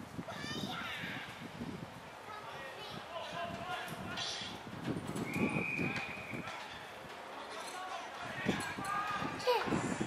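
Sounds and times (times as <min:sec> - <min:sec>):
shrill whistle blow: 0:05.2 - 0:06.4.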